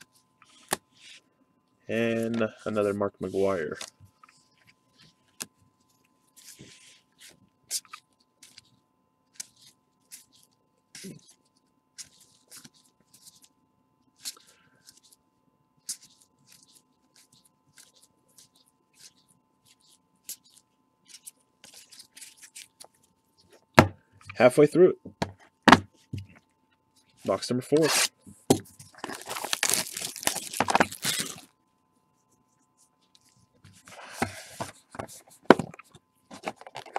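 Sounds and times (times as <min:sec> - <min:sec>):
faint steady hum: 0:00.0 - 0:36.9
plastic wrap tearing and crinkling: 0:28.8 - 0:31.5.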